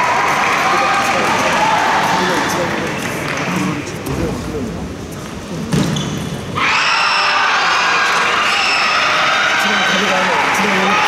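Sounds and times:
crowd cheering: 0.0 - 3.8, 6.6 - 11.0.

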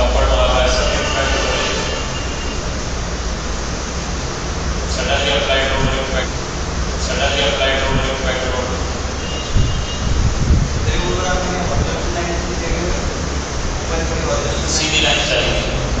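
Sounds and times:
person's voice: 0.0 - 1.9, 4.9 - 6.4, 7.0 - 8.9, 13.9 - 16.0
low room noise hum: 0.0 - 16.0.

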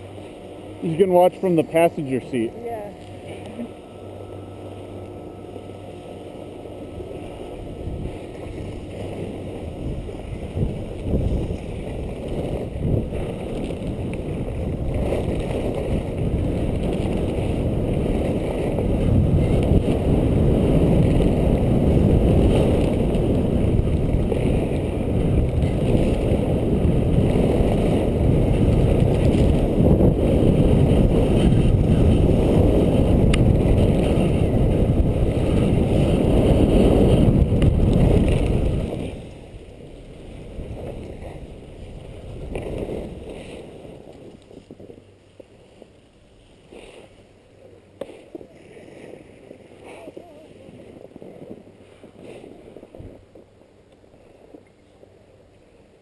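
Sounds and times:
wind buffeting microphone: 0.0 - 46.0, 47.9 - 53.8
skis hissing over snow: 35.2 - 53.2.

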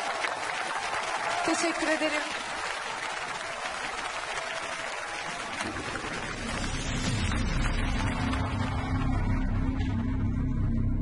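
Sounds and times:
audience applauding: 0.0 - 10.0
music with low bass: 6.2 - 11.0.

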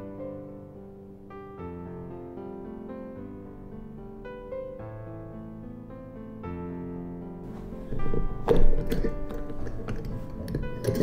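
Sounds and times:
background music: 0.0 - 11.0
glass jar lid clicking and clunking: 7.6 - 11.0.

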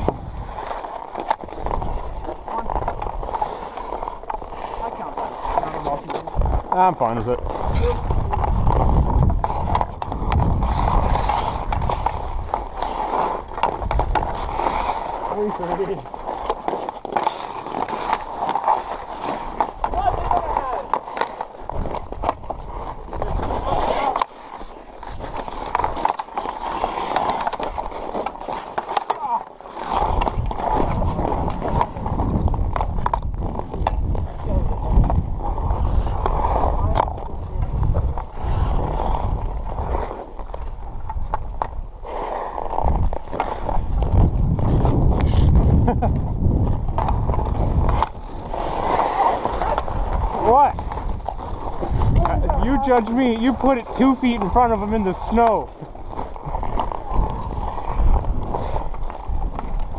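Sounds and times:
hockey sticks clacking on puck: 0.0 - 34.3, 35.8 - 44.2, 46.9 - 59.9
skate blades scraping ice: 0.0 - 59.9.

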